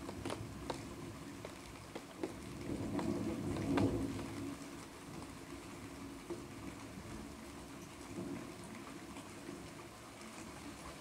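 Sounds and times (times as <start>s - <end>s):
raindrops tapping sharply: 0.0s - 5.4s
rain: 0.0s - 11.0s
distant thunder rumble: 2.5s - 4.6s.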